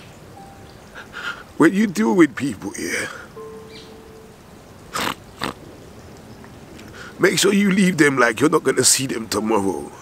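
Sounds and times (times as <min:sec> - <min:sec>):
man talking: 0:01.6 - 0:03.4, 0:07.2 - 0:10.0
man sniffing: 0:04.9 - 0:05.6.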